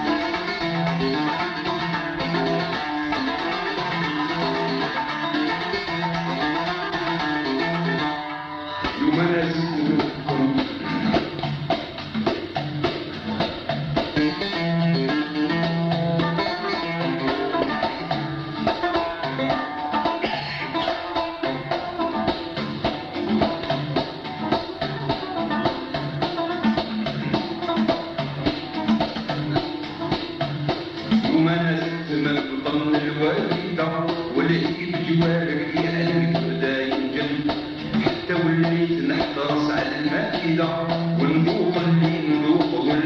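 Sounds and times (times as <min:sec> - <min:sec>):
plucked string instruments: 0:00.0 - 0:43.0
steady percussion: 0:00.0 - 0:43.0.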